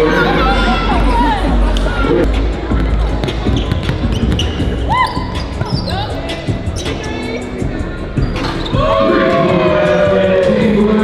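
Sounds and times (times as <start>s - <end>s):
background music: 0.0s - 11.0s
basketball dribbling on hardwood: 2.8s - 4.8s
sneaker squeaks: 3.2s - 7.4s, 8.2s - 8.8s.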